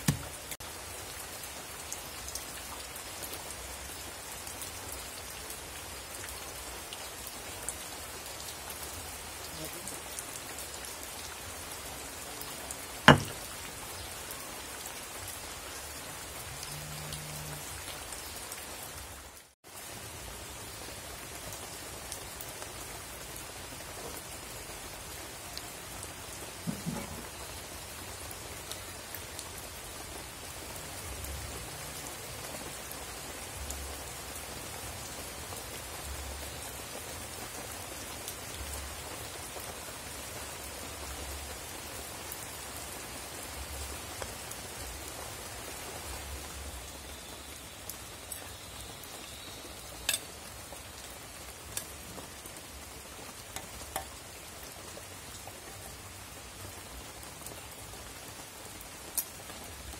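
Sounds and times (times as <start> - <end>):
burning wood crackling: 0.0 - 0.6.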